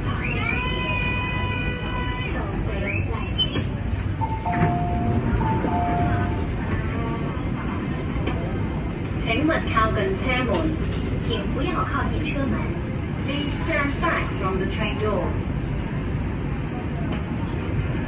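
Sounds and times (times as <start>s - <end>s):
murmur of voices: 0.0s - 18.0s
train low rumble: 0.0s - 18.0s
high-low two-note signal: 4.2s - 6.4s.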